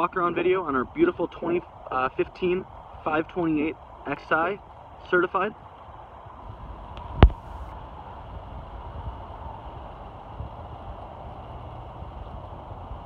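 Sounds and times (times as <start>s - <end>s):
uneven low rumble: 6.3s - 10.9s.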